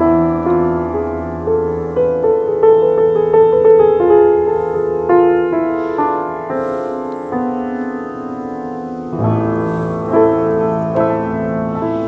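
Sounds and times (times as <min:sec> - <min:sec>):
slow piano chords: 0:00.0 - 0:12.0.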